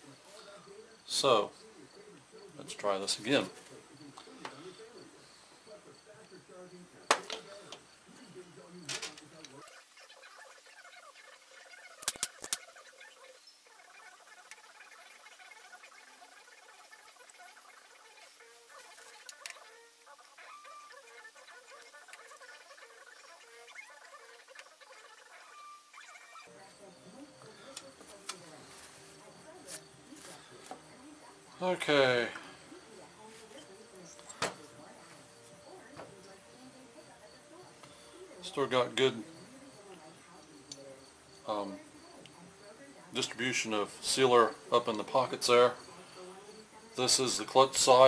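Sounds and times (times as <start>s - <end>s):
metal parts clicking and knocking: 12.0s - 12.6s.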